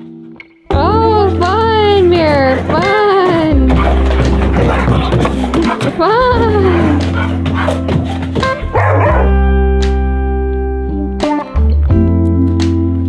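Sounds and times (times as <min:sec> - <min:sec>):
background music: 0:00.0 - 0:13.0
dog barking and yowling: 0:08.6 - 0:09.4.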